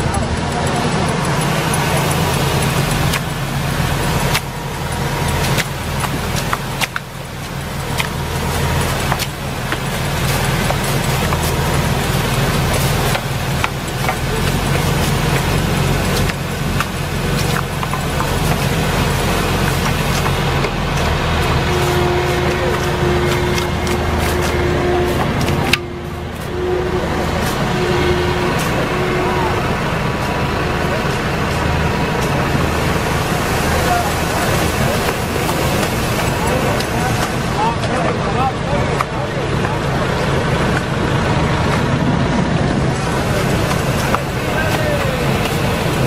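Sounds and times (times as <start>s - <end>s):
tractor engine running: 0.0s - 46.0s
poles clacking on branches: 0.2s - 38.1s.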